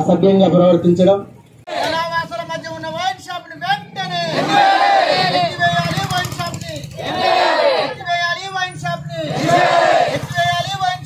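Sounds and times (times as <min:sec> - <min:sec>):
men shouting a slogan together: 0:01.7 - 0:02.2, 0:04.2 - 0:05.7, 0:07.0 - 0:08.0, 0:09.1 - 0:10.4.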